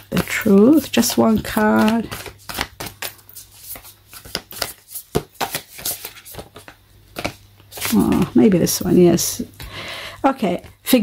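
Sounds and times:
cards being shuffled: 0.0s - 9.6s.

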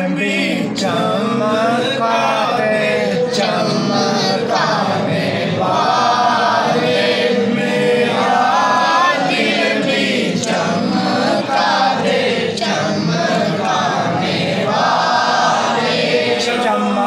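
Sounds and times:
man chanting into microphone: 0.0s - 17.0s.

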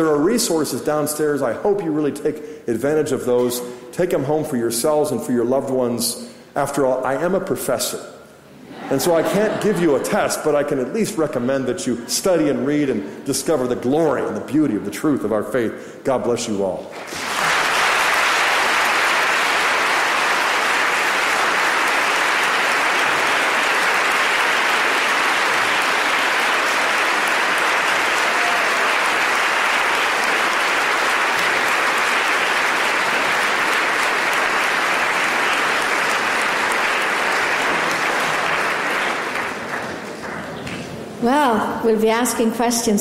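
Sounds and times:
audience applauding: 16.9s - 41.0s.

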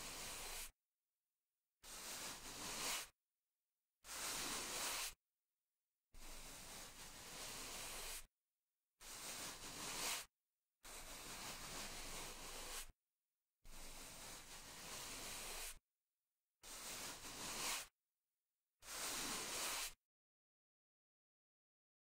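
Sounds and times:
scrub brush scrubbing: 0.0s - 0.7s, 1.9s - 3.1s, 6.3s - 8.3s, 9.0s - 10.3s, 10.9s - 12.9s, 13.8s - 15.8s, 16.8s - 17.9s, 18.9s - 20.0s.

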